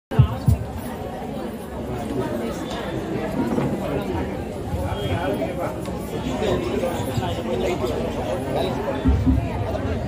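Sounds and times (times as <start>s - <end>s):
indistinct chatter of people: 0.1s - 10.0s.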